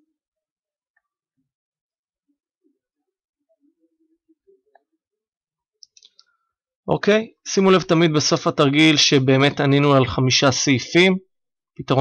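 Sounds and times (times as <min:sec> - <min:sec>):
man speaking: 0:06.9 - 0:12.0.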